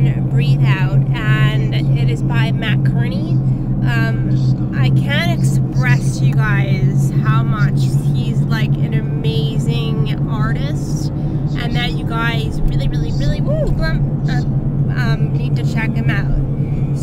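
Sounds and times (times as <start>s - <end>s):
car engine and road noise: 0.0s - 17.0s
woman talking: 0.0s - 17.0s.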